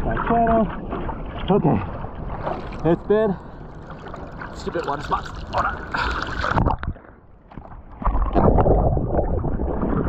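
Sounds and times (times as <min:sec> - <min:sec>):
water sloshing around surfboard: 0:00.0 - 0:08.7.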